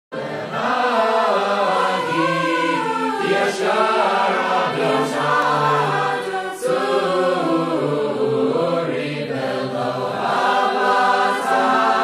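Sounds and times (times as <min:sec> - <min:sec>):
voices chanting in harmony: 0:00.2 - 0:12.0.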